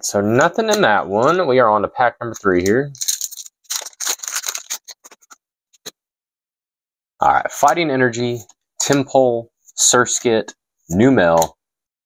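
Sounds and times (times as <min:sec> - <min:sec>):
foil wrapper crinkling: 0:02.9 - 0:05.4.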